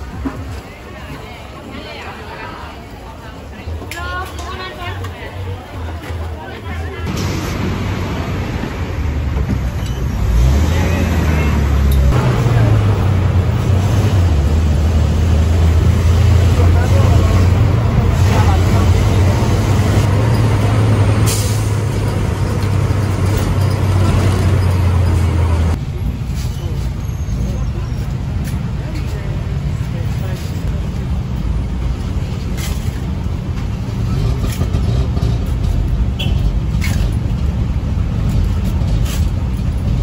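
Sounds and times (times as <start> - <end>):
bus engine humming: 0.0 - 40.0.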